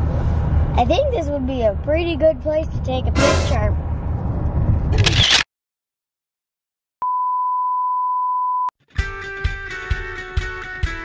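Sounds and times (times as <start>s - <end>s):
steady test-tone beep: 7.0s - 8.7s.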